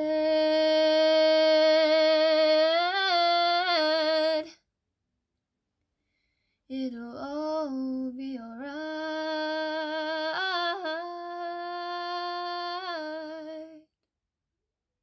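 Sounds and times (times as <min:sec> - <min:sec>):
woman singing unaccompanied: 0:00.0 - 0:04.6, 0:06.7 - 0:13.8.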